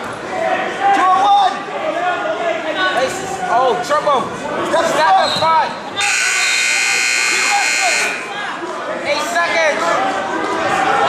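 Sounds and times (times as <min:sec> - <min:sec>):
scoreboard buzzer blast: 0:06.0 - 0:08.3.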